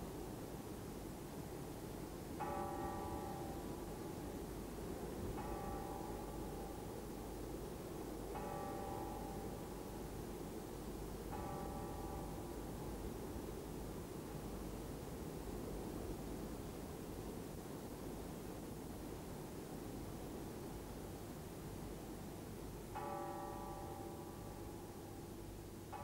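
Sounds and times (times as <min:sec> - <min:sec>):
church bell tolling: 0:02.4 - 0:03.8, 0:05.3 - 0:06.9, 0:08.3 - 0:09.8, 0:11.3 - 0:12.5, 0:23.0 - 0:26.0.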